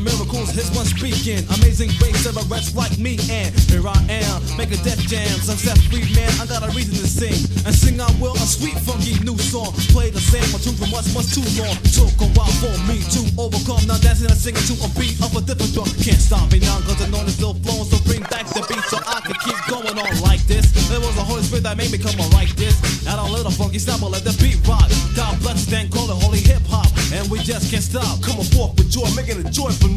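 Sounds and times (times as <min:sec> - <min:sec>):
rapping over a beat: 0:00.0 - 0:29.9.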